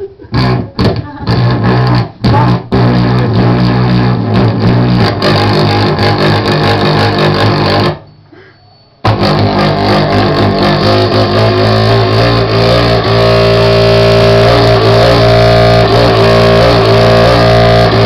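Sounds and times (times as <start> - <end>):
distorted noise music: 0.0 - 8.1, 9.0 - 18.0
steady droning tones: 0.3 - 8.1, 9.0 - 18.0.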